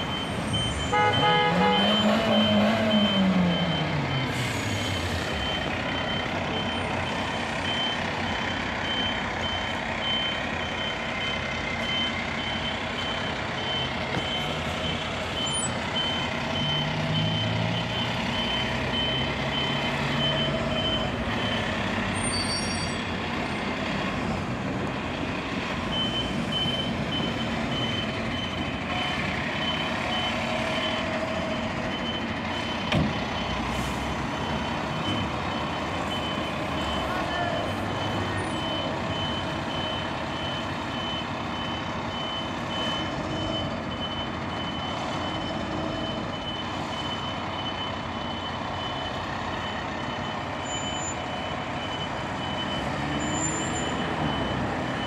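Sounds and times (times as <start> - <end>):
reversing alarm beeping: 0.0 - 23.3, 24.9 - 55.0
diesel engine running: 0.0 - 55.0.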